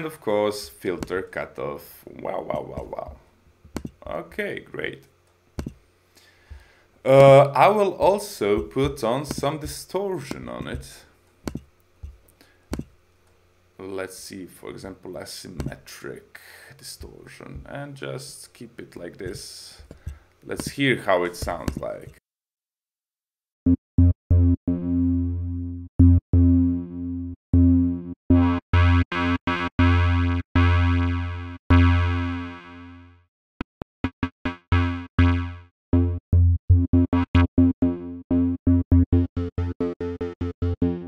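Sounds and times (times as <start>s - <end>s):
distorted synth bass notes: 2.8s - 4.2s, 23.7s - 33.0s
computer mouse clicks: 3.7s - 4.0s, 5.6s - 5.8s, 11.5s - 12.9s, 21.4s - 22.2s.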